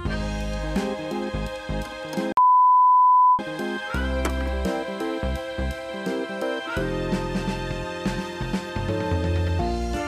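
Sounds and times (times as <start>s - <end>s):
background music: 0.0s - 2.4s, 3.4s - 10.0s
censor bleep tone: 2.4s - 3.4s.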